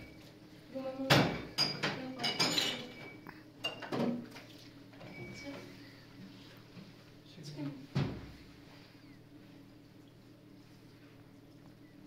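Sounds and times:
dishes and cutlery clinking: 0:01.2 - 0:04.2.

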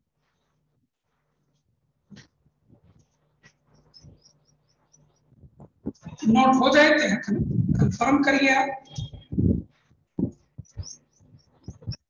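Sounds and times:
faint high chirps: 0:03.7 - 0:05.4, 0:08.8 - 0:09.4.

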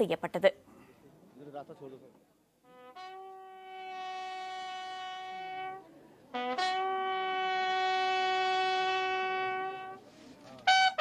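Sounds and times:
bugle long note: 0:02.6 - 0:11.0.

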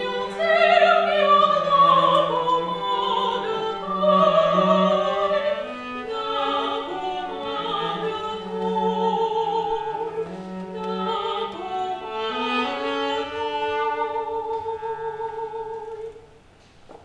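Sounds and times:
bowed cello: 0:00.0 - 0:16.2
soprano singing with vibrato: 0:00.0 - 0:16.3.

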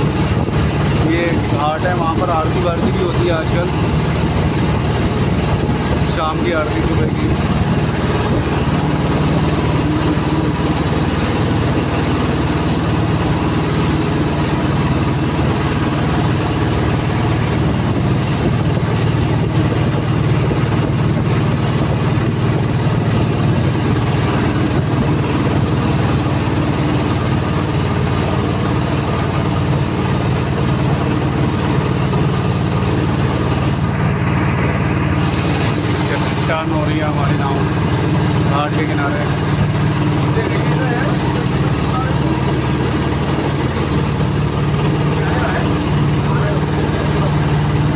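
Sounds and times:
boat motor humming: 0:00.0 - 0:47.9.

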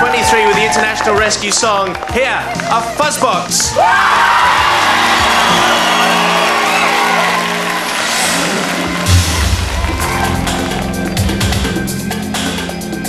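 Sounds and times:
studio audience cheering: 0:00.0 - 0:11.8.

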